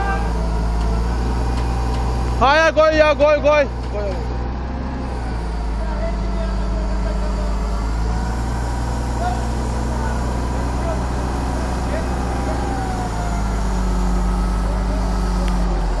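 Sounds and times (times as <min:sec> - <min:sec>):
diesel engine running under load: 0:00.0 - 0:16.0.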